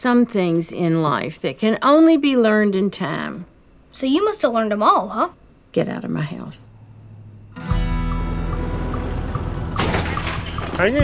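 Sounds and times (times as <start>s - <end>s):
sitcom music cue: 7.5s - 9.8s.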